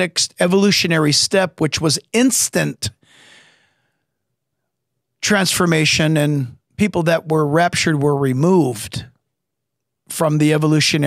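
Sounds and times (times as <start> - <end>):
man breathing into microphone: 3.0 - 4.1.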